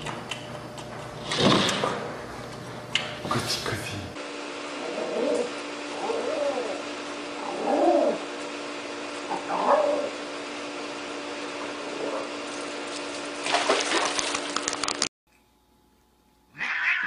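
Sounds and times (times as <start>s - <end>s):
steady hum: 0.0s - 16.5s.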